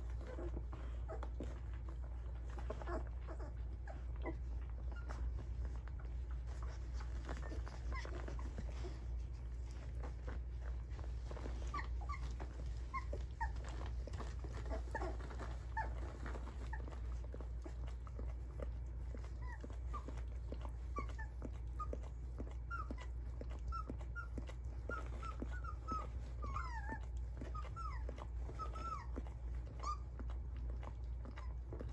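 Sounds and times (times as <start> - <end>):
puppies squeaking and whimpering: 0.0 - 31.9.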